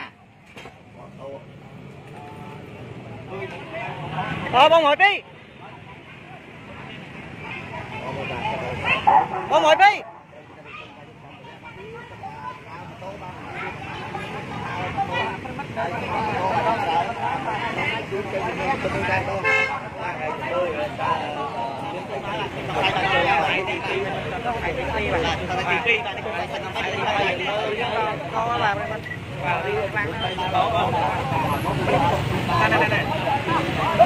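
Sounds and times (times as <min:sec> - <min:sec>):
crowd of people talking: 0:00.0 - 0:34.0.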